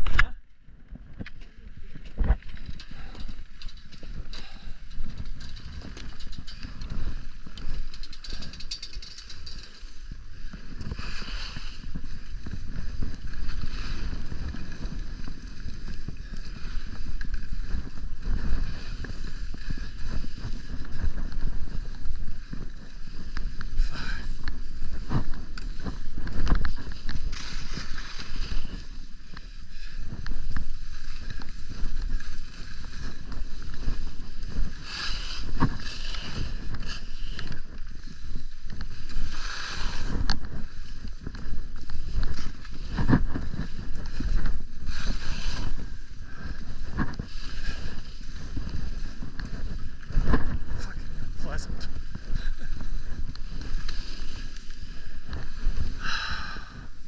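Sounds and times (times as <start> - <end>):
wind rumbling on microphone: 0.0 - 57.0
skis scraping over snow: 2.1 - 57.0.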